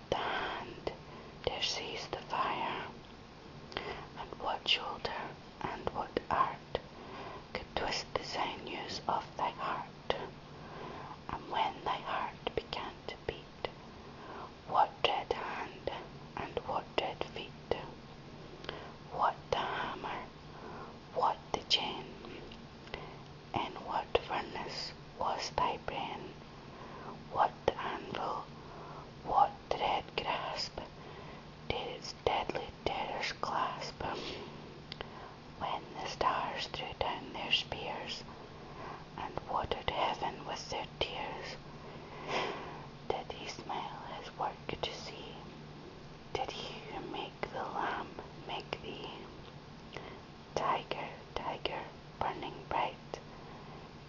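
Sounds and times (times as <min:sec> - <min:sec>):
person whispering: 0:00.0 - 0:03.0, 0:03.8 - 0:06.8, 0:07.6 - 0:10.4, 0:11.2 - 0:13.7, 0:14.7 - 0:18.0, 0:19.1 - 0:20.3, 0:21.1 - 0:23.0, 0:23.6 - 0:26.4, 0:27.3 - 0:28.5, 0:29.2 - 0:30.9, 0:31.7 - 0:34.5, 0:35.6 - 0:38.3, 0:39.2 - 0:41.6, 0:43.1 - 0:45.5, 0:46.4 - 0:49.4, 0:50.0 - 0:53.2.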